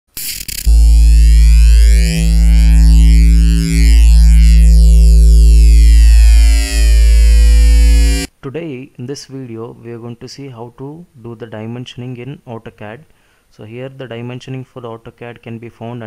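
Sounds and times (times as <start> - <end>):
deep bass drone: 0.6 - 8.3
sweeping high tones: 0.6 - 8.3
synthesized intro music: 0.6 - 8.3.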